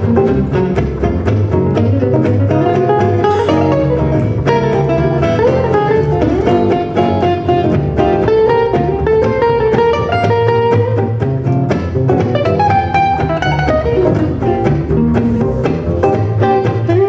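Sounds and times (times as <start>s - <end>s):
acoustic guitar melody: 0.0s - 17.0s
double bass walking line: 0.0s - 17.0s
strummed rhythm guitar: 0.0s - 17.0s.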